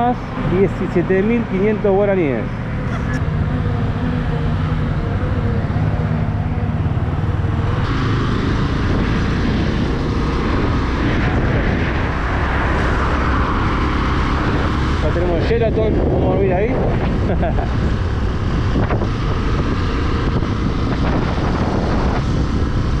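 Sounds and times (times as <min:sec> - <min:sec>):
motorcycle engine running: 0:01.3 - 0:11.5
wind noise rushing: 0:05.7 - 0:23.0.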